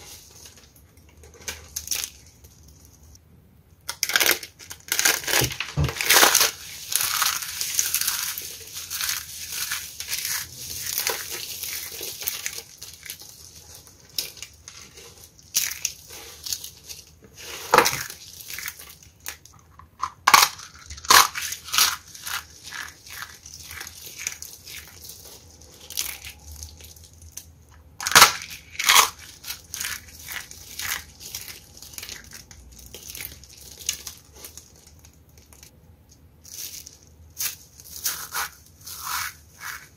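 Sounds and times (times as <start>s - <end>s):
dry soap flakes crunching: 3.9s - 39.9s.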